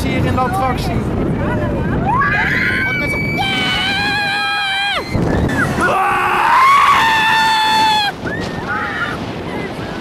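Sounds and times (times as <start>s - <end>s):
riders screaming on a ride: 2.0s - 9.7s.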